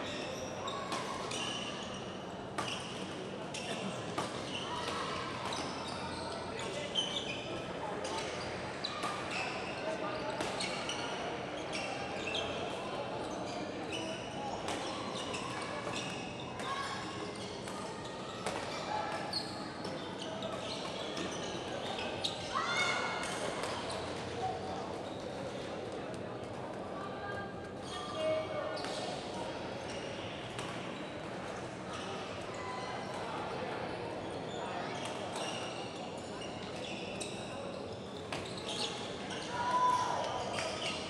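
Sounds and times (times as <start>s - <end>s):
murmur of voices: 0.0s - 41.0s
shoes squeaking on court floor: 13.3s - 22.5s, 34.5s - 39.5s.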